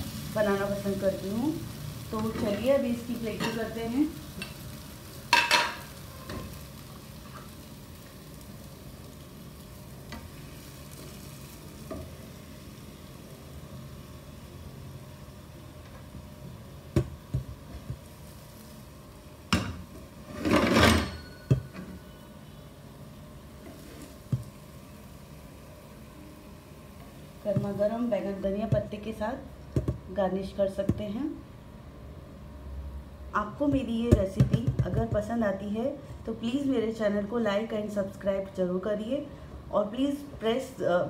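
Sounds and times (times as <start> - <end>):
faint steady hiss: 0.0 - 20.2.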